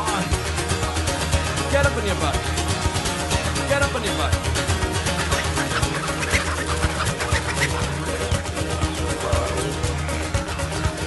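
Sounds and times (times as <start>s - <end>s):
upbeat instrumental song: 0.0s - 11.0s.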